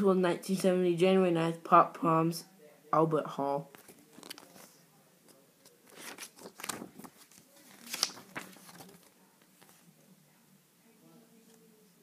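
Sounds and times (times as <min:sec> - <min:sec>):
book pages rustling: 0:03.7 - 0:04.7, 0:05.6 - 0:09.9.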